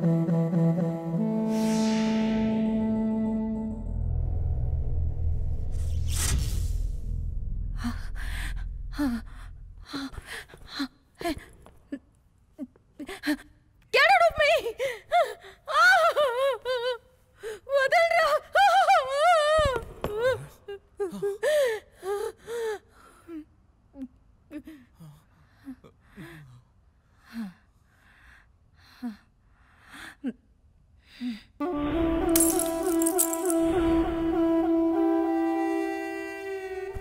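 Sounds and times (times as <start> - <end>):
low music drone: 0.0 - 5.9.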